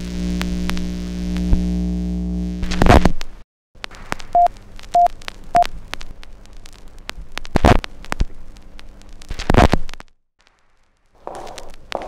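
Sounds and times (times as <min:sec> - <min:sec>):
crackles and pops: 0:00.0 - 0:12.0.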